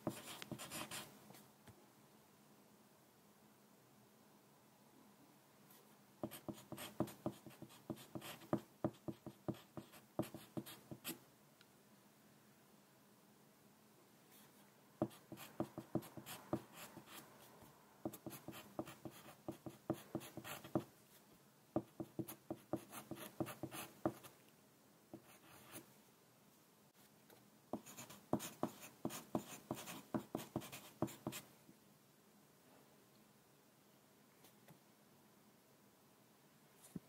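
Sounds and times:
pencil scratching on paper: 0.0 - 1.1, 6.2 - 11.2, 15.0 - 17.3, 18.0 - 20.9, 21.8 - 24.3, 27.7 - 31.4.

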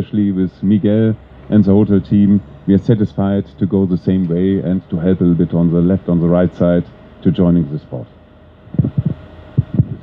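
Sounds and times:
microphone handling knocks: 8.7 - 10.0.

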